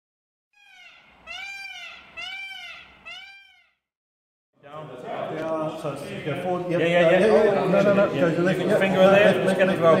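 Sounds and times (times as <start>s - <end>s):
peacock calling: 0.6s - 3.8s.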